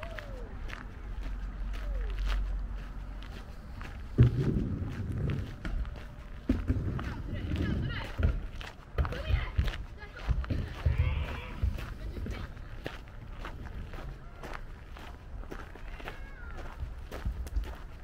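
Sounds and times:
footsteps on gravel: 0.0 - 18.0.

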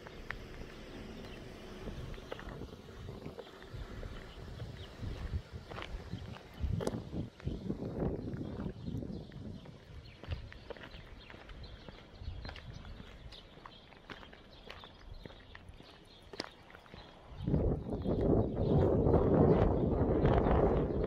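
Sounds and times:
footsteps on paved street: 0.0 - 21.0
wind rushing on microphone: 1.2 - 10.7, 11.6 - 13.4, 17.3 - 21.0.

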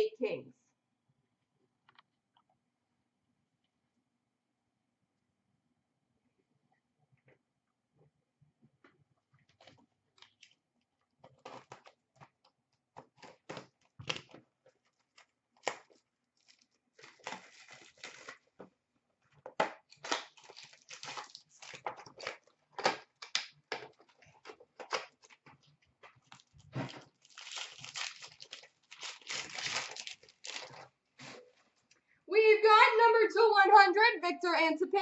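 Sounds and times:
foil wrappers crinkling and tearing: 13.0 - 18.6, 19.9 - 30.9.

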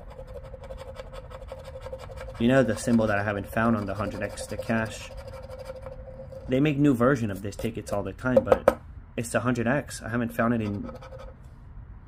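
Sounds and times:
scratching lottery ticket: 0.0 - 6.6, 10.5 - 11.3.

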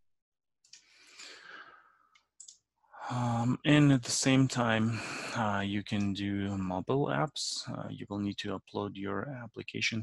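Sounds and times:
breathy exhale: 0.9 - 1.9
computer mouse clicks: 2.1 - 2.6.

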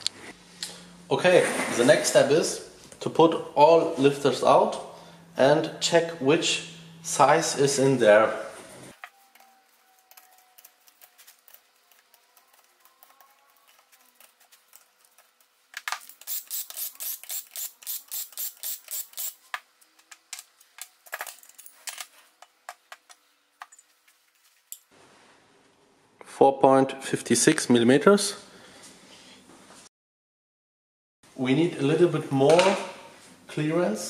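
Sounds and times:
metal parts clinking: 21.0 - 22.2.

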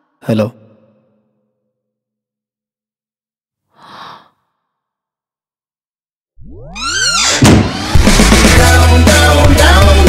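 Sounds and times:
person sighing: 3.8 - 4.4.

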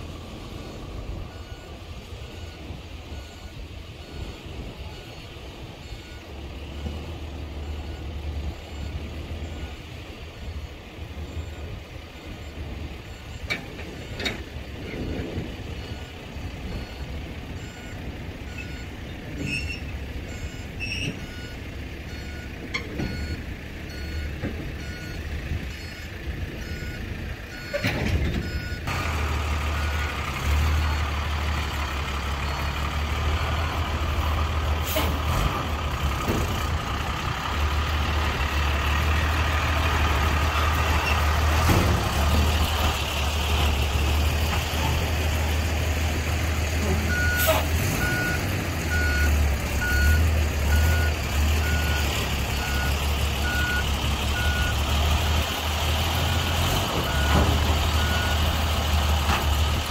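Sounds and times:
diesel truck engine rumbling: 0.0 - 59.9
reversing alarm beeping: 0.6 - 9.8, 15.8 - 28.9, 47.1 - 55.4, 56.2 - 58.6.

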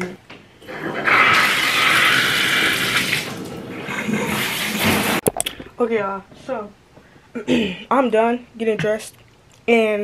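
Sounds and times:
shower water running: 0.6 - 5.2.

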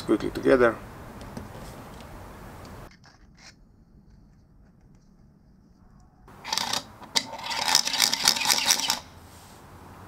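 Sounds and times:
spinning top rattling whir: 6.4 - 9.1.

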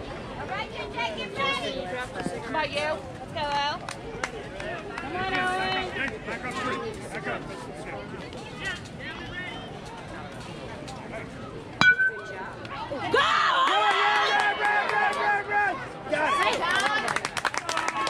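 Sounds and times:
crowd chatter: 0.0 - 18.0
metal bat hitting ball: 11.8 - 12.5
spectators shouting and cheering: 11.9 - 17.0.

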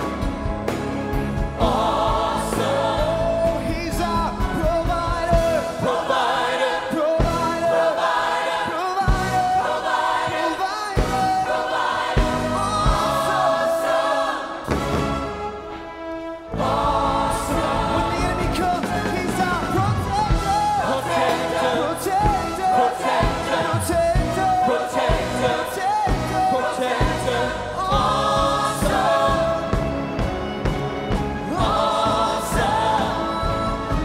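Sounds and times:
choir singing with instruments: 0.0 - 34.0.

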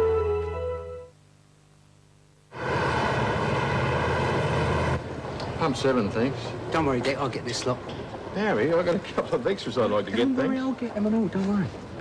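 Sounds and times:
loud engine noise: 2.5 - 5.8.

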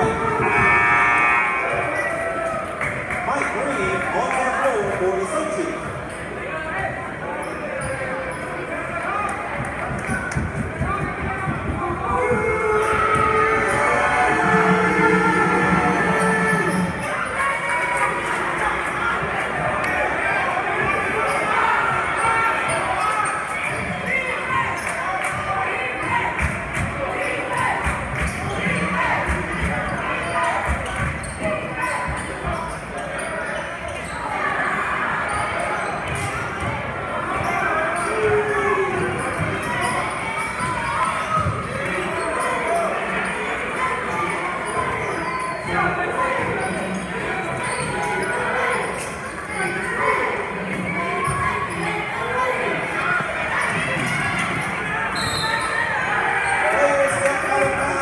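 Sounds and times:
people talking and shouting: 0.0 - 58.0.

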